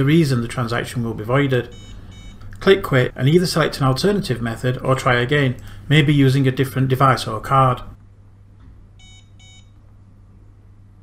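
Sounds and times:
card terminal short beeps: 0:01.7 - 0:02.5, 0:09.0 - 0:09.8.

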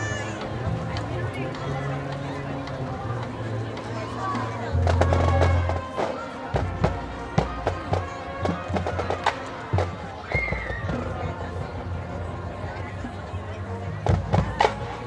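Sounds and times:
marching band playing: 0:00.0 - 0:15.0.

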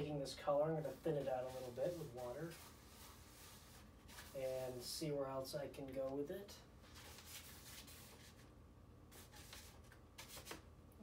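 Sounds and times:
paintbrush swishing on paper: 0:00.8 - 0:04.9, 0:06.8 - 0:08.5, 0:09.1 - 0:10.6.

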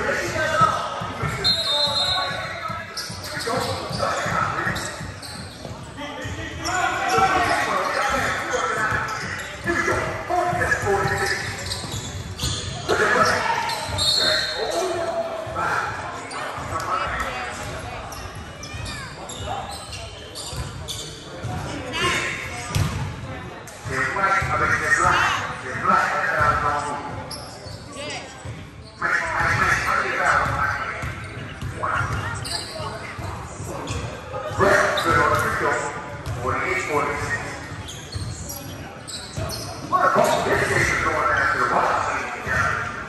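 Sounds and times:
basketball bouncing on hardwood: 0:22.7 - 0:23.0.

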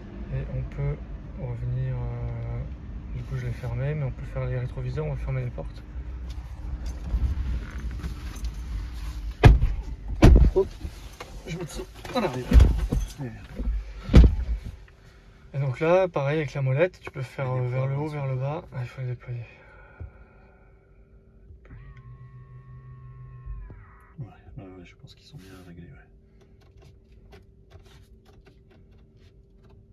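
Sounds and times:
car doors shutting: 0:09.2 - 0:14.8
electric motor whine: 0:21.6 - 0:23.7.

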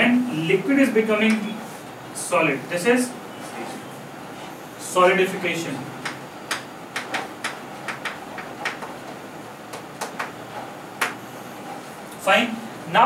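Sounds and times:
chalk ticking on chalkboard: 0:06.0 - 0:08.9.

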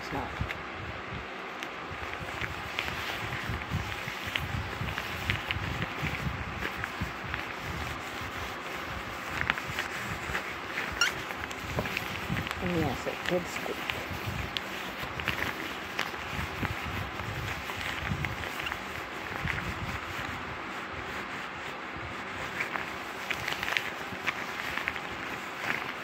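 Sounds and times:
fabric rustling and scratching: 0:00.0 - 0:26.0
small irregular clicks: 0:01.5 - 0:20.4, 0:22.4 - 0:26.0.

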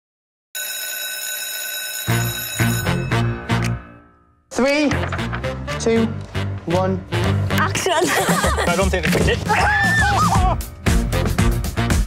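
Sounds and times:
electric school bell ringing: 0:00.6 - 0:03.5.

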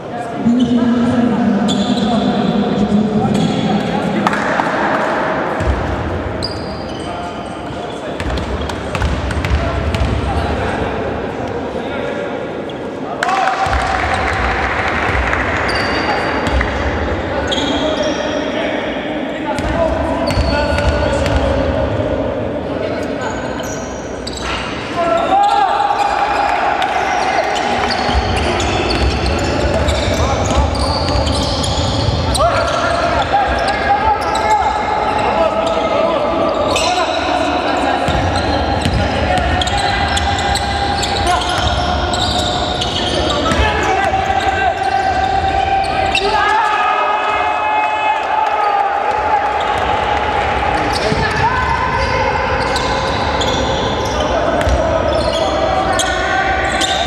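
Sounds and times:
players' voices: 0:00.0 - 0:57.0.

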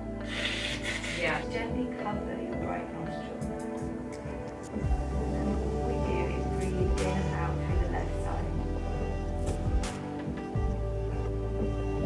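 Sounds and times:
soft background music: 0:00.0 - 0:12.0
person blowing nose: 0:00.2 - 0:01.3.

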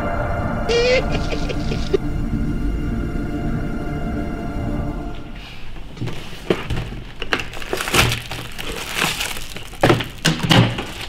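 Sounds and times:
cardboard box crinkling: 0:06.0 - 0:11.0
plastic wrapper crinkling: 0:06.0 - 0:11.0.

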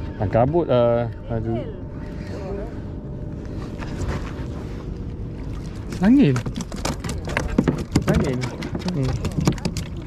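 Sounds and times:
knocks and rustles on kayak: 0:05.8 - 0:10.0.

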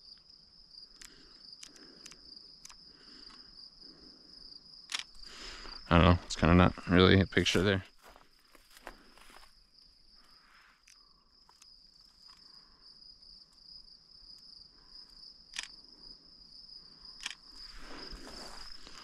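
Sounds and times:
crickets trilling: 0:00.0 - 0:19.0
sharp clicks: 0:00.8 - 0:03.4, 0:04.9 - 0:05.3, 0:15.5 - 0:15.8, 0:17.2 - 0:17.5.

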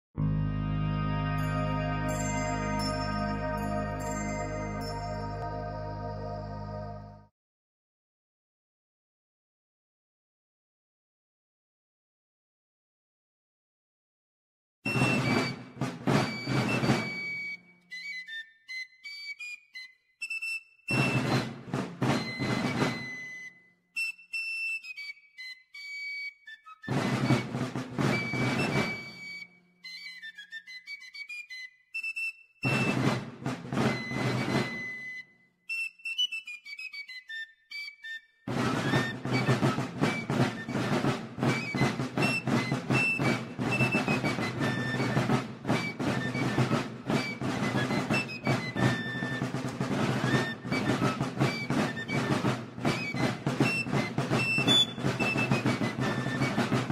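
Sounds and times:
shrill fife tune: 0:00.2 - 0:07.3, 0:38.6 - 0:49.6, 0:50.2 - 0:56.9
marching drums: 0:14.9 - 0:17.2, 0:21.0 - 0:23.2, 0:26.9 - 0:29.2, 0:32.7 - 0:35.0, 0:38.5 - 0:56.9.

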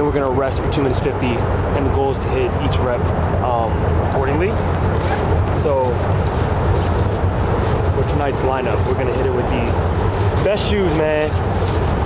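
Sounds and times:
low urban rumble: 0:00.0 - 0:12.0
bag rustling: 0:04.1 - 0:12.0.

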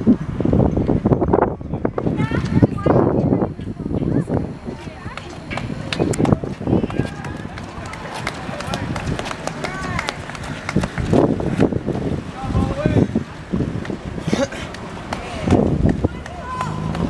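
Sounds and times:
indistinct talk: 0:01.6 - 0:17.0.

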